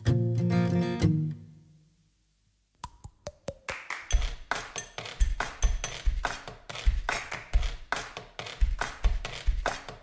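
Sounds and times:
percussive knocks and taps: 2.8 - 10.0.

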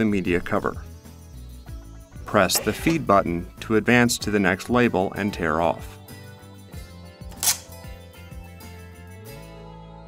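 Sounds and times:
soft background music: 0.0 - 10.0.

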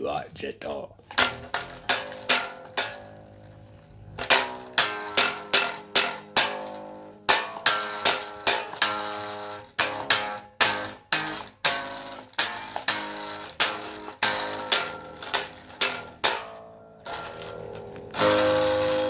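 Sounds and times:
guitar strummed chords: 1.1 - 19.0.

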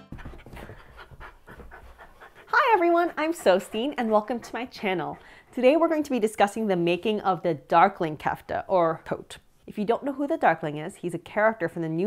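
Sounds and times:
dog panting: 0.0 - 7.0.

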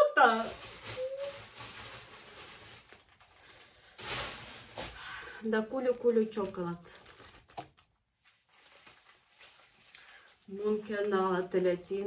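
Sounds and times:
wrapper rustling: 0.0 - 12.0.

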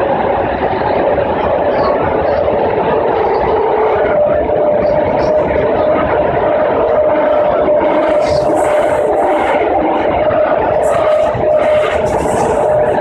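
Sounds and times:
constant whine: 0.0 - 13.0
train rail rumble: 0.0 - 13.0.

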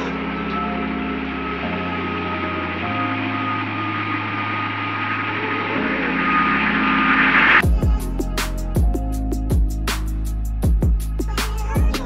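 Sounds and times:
background music low chords: 0.0 - 12.0
jet airliner passing overhead: 3.7 - 7.6.

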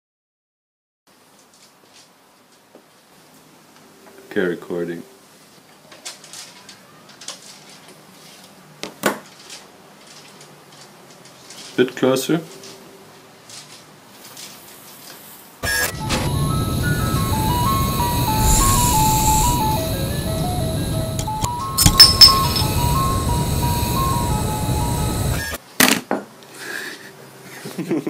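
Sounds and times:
low mechanical whirring: 15.6 - 25.6
tinny jingle tune: 15.6 - 25.6.

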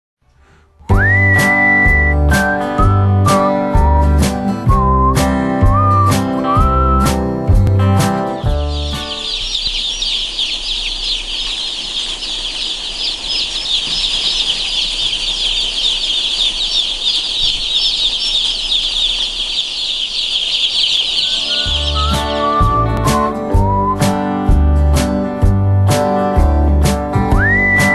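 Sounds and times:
guitar music: 0.9 - 9.5, 21.4 - 27.9
chicks peeping: 8.0 - 23.9.

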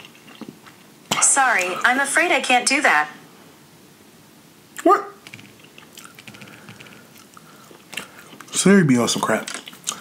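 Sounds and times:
fingers tapping on smartphone: 5.2 - 7.1.

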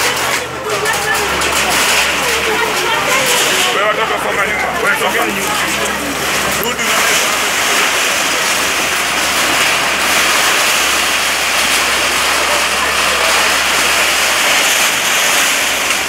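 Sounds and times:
excavator diesel engine: 0.0 - 16.0
faint voices: 0.0 - 16.0.

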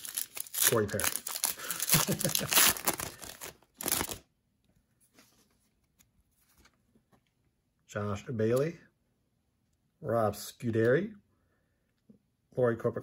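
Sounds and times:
wrapper torn and crinkled: 0.0 - 4.2
faint handling of cards: 0.0 - 7.7.

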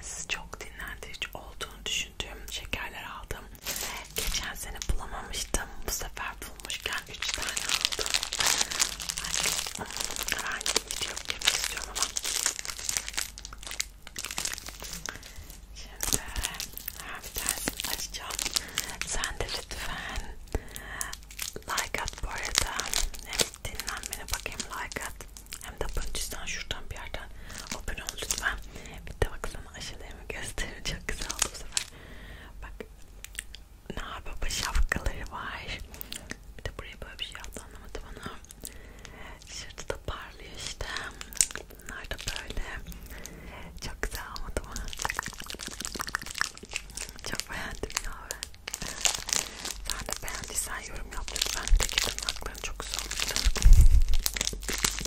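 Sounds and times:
plastic wrappers crinkling: 3.6 - 26.4, 27.0 - 28.7, 31.1 - 32.0, 40.6 - 55.0.

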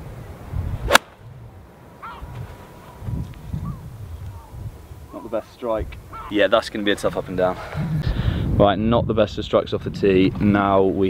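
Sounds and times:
golf club swish: 0.8 - 1.2.

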